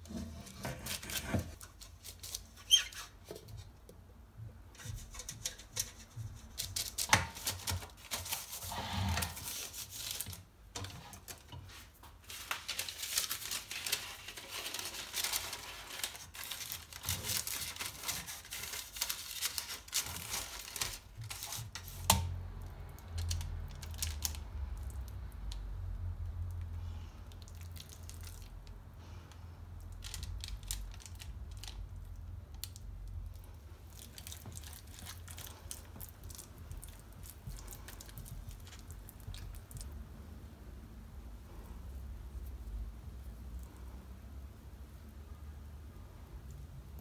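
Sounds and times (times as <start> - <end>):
parchment paper crinkling: 0.1 - 3.6, 4.8 - 22.3, 22.9 - 25.6, 29.9 - 40.0
batter pouring wet sounds: 29.9 - 40.0.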